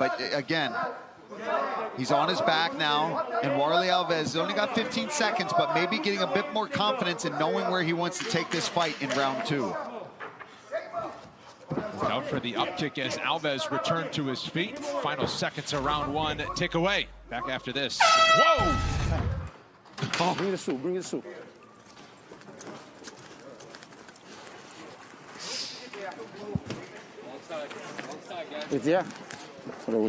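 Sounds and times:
murmuring voices: 1.4 - 19.5
commentator speaking: 12.0 - 18.1.

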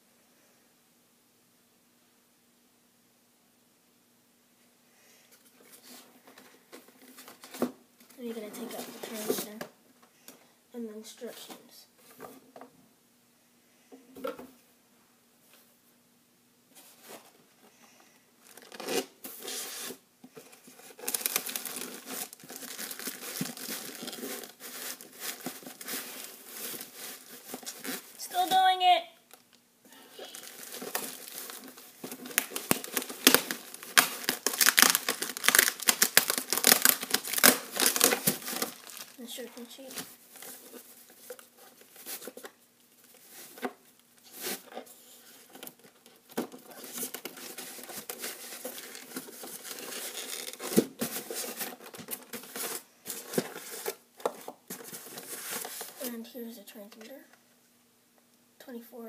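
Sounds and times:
plastic packaging crinkling and tearing: 18.4 - 28.6, 30.1 - 43.6, 44.3 - 56.1.

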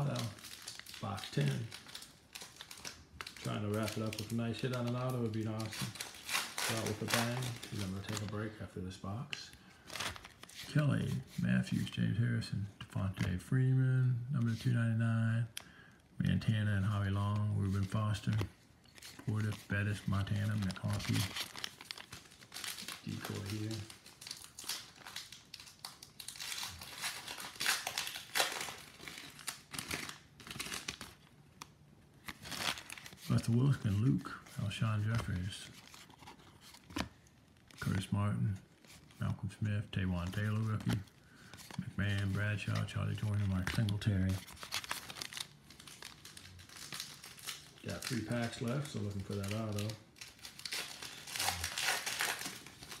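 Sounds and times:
plastic wrapper crinkling: 0.0 - 12.2, 15.4 - 53.0.

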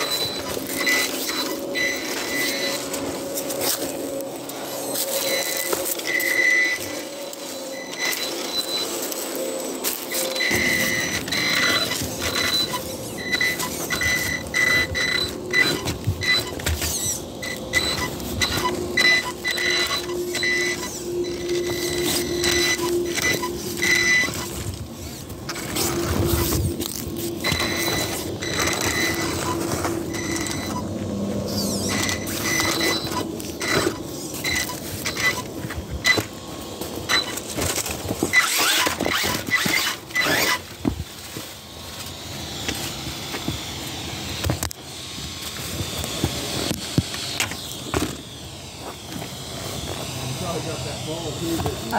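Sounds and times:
rc car motor whining: 0.0 - 51.9.

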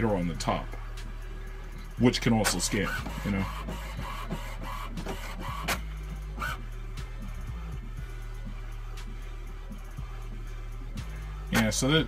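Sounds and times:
printer motor hum: 2.4 - 6.6
printer whirring and clicks: 2.4 - 6.6.

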